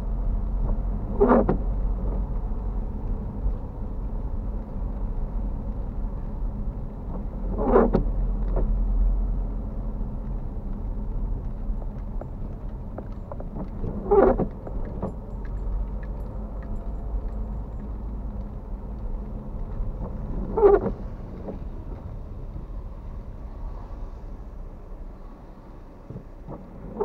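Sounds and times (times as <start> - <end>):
car driving on wet road: 0.0 - 27.0
windscreen wipers swishing: 0.0 - 27.0.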